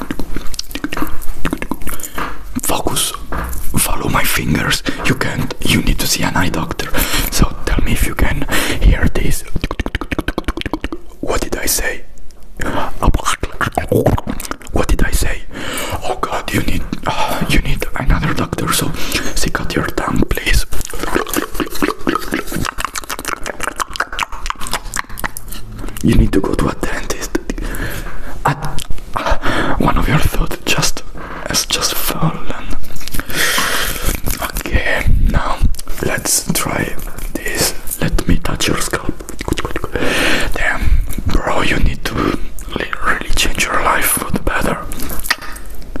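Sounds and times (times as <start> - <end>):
tongue clicks: 0.0 - 2.7, 9.5 - 11.6, 20.8 - 26.1, 38.9 - 40.0
lip smacks: 0.0 - 3.8, 9.5 - 11.6, 12.2 - 15.1, 18.4 - 27.8, 28.5 - 29.2, 32.7 - 34.8, 35.6 - 41.4, 44.9 - 46.0
person whispering: 0.0 - 46.0.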